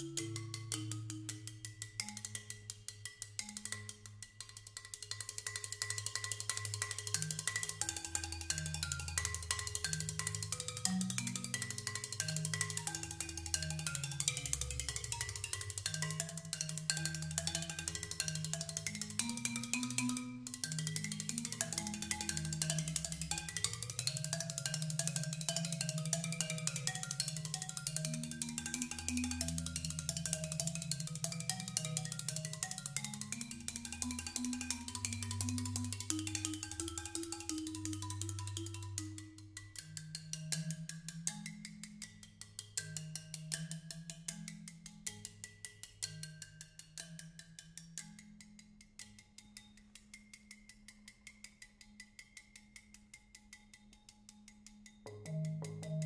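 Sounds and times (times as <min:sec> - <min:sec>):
solo marimba: 0:00.0 - 0:49.6, 0:55.0 - 0:56.0.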